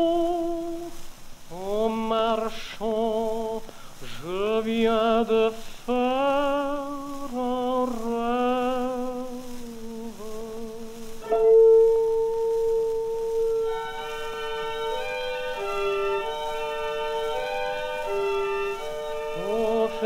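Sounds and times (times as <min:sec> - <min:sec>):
tenor singing: 0:00.0 - 0:20.0
orchestra playing sustained notes: 0:11.2 - 0:20.0.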